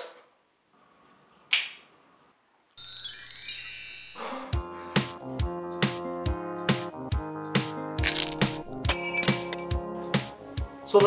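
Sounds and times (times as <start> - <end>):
shimmering magic sparkle chime: 2.8 - 4.5.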